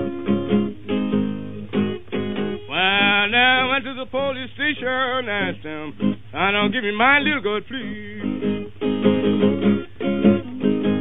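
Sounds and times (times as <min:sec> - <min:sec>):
acoustic blues guitar picking: 0:00.0 - 0:11.0.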